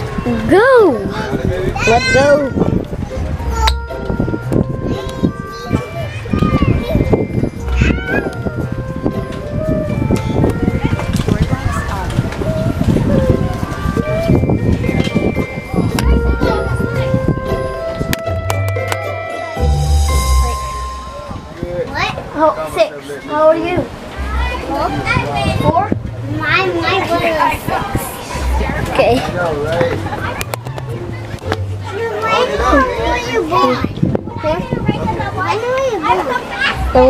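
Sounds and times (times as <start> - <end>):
children's voices: 0.0 - 18.0, 19.3 - 29.0, 29.7 - 37.0
low microphone rumble: 2.5 - 22.4, 23.8 - 31.9.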